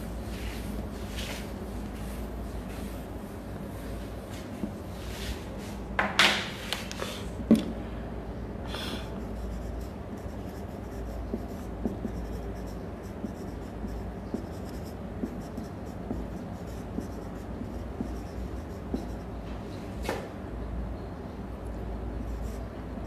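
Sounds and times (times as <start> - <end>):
marker pen writing on whiteboard: 9.2 - 19.3.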